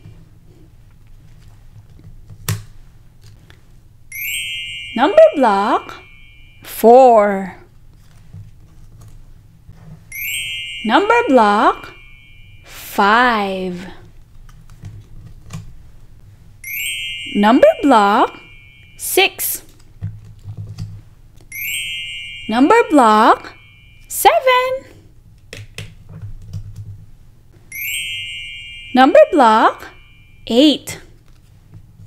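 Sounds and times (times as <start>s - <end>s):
sparkly chime ringing shimmer: 4.1s - 7.3s, 10.1s - 13.8s, 16.6s - 19.8s, 21.5s - 24.8s, 27.7s - 30.7s.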